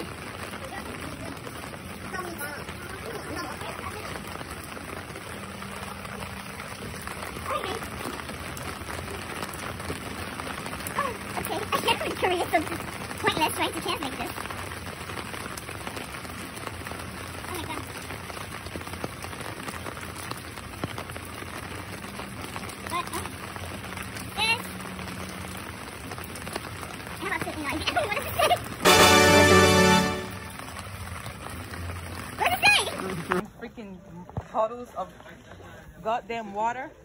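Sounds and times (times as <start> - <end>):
steady rain on umbrella: 0.0 - 33.6.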